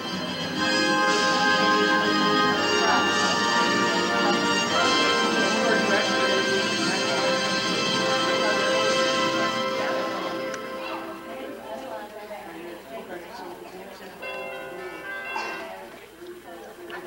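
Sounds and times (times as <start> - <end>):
layered held tones music: 0.0 - 11.7.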